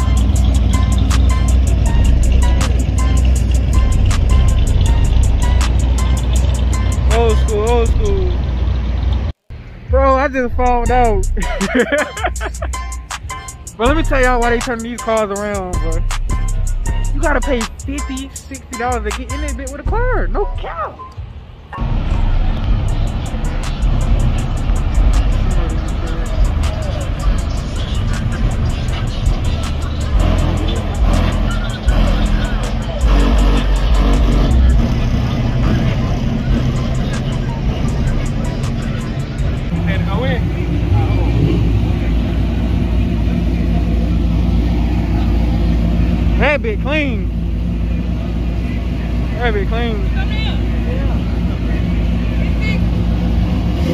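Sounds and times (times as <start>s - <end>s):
music: 0.0s - 8.4s, 9.9s - 21.2s, 21.8s - 42.9s
car engine rumbling: 0.0s - 53.9s
people's voices: 6.9s - 8.5s, 9.9s - 21.2s, 21.8s - 53.9s.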